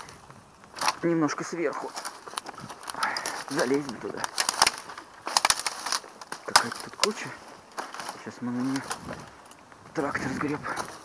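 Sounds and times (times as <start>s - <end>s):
footsteps through dry brush: 0.0s - 11.0s.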